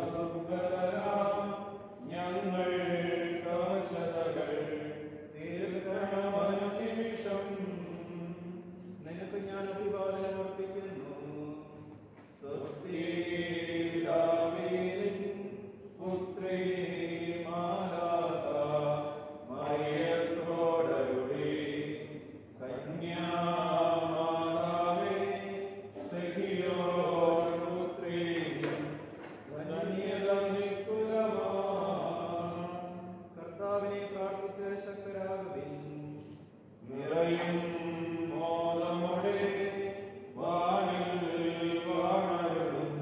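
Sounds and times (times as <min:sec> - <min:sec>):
chanted hymn singing: 0:00.0 - 0:43.0.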